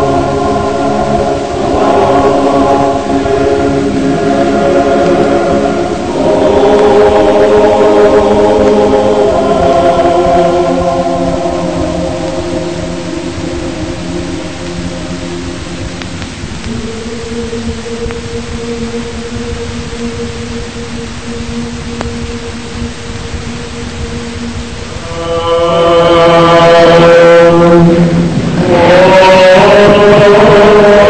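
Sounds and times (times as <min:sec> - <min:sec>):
choral chanting: 0:00.0 - 0:31.0.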